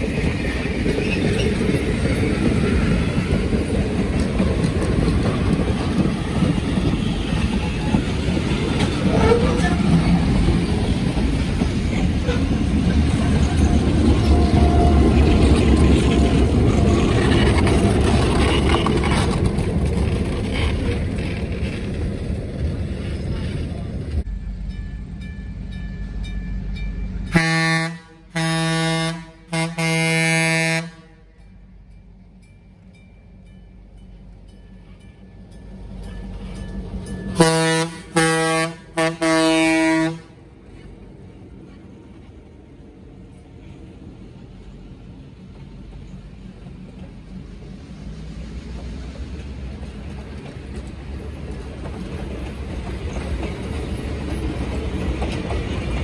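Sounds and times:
train wheels clacking on rails: 0.0 - 27.0, 44.7 - 56.0
diesel locomotive engine rumble: 0.0 - 56.0
locomotive air horn blasts: 27.3 - 31.4, 37.4 - 40.4.

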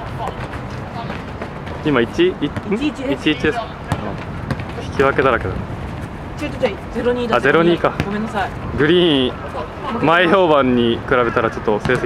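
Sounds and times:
players' voices: 0.0 - 12.0
ball being kicked: 3.9 - 5.1, 7.9 - 8.2.

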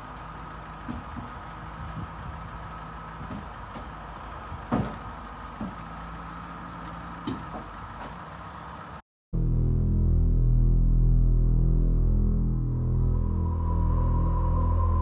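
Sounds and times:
truck engine idling: 0.0 - 9.0
knocks and clunks: 4.5 - 5.9, 6.8 - 8.2.

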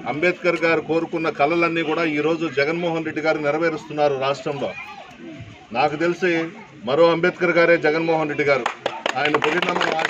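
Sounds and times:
man speaking: 0.0 - 4.7.

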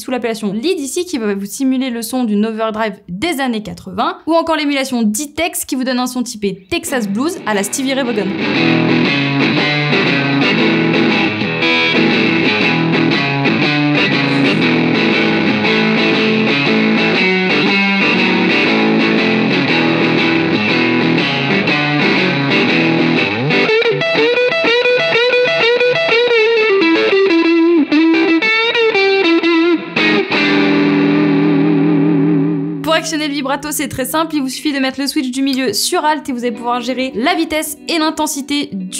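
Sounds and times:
overdriven electric guitar: 6.9 - 33.4.

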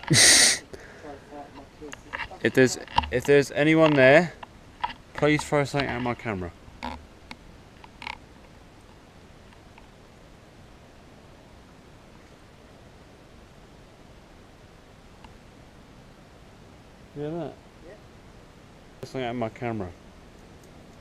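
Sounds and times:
steady background hiss: 0.0 - 21.0
faint clicks: 1.5 - 9.9, 15.2 - 15.4.

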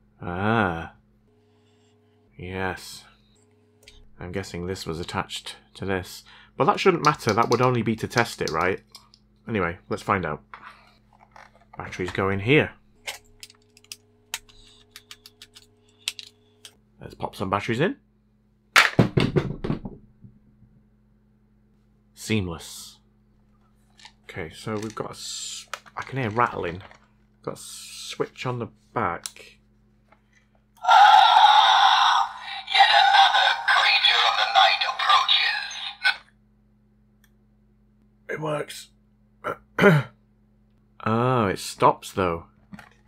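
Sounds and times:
faint steady hum: 0.0 - 43.0
tinny recorded voice: 30.8 - 36.2.

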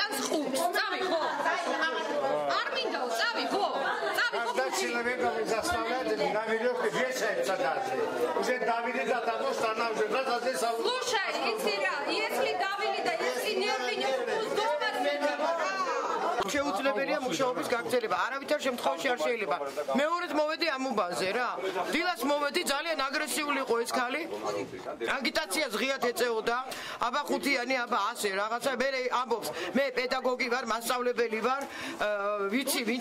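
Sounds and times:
people talking agitatedly: 0.0 - 33.0.

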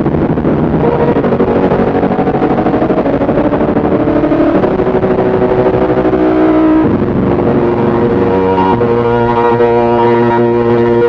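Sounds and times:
electronic keyboard sustained chords: 0.0 - 11.0.

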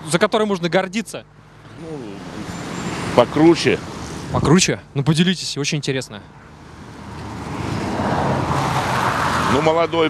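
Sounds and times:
vehicle passing: 1.4 - 4.6, 6.2 - 10.0.

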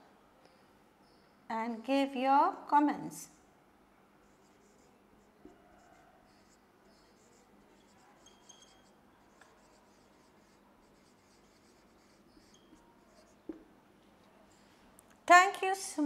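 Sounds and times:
marker squeaking on whiteboard: 4.2 - 13.6.

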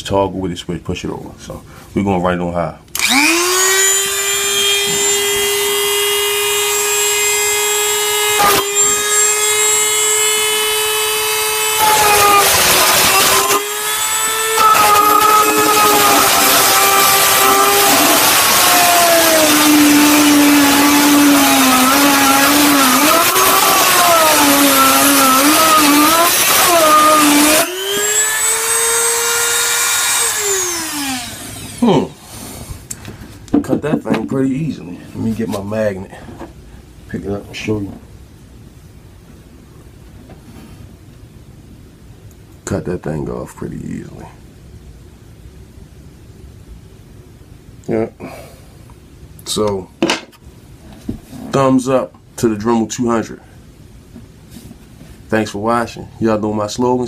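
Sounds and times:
grinding through metal: 3.0 - 32.1
rotary tool whining: 3.0 - 32.5.

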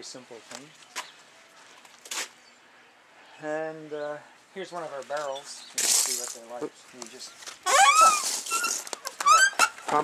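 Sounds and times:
compost tumbler squeaking: 7.6 - 10.0.

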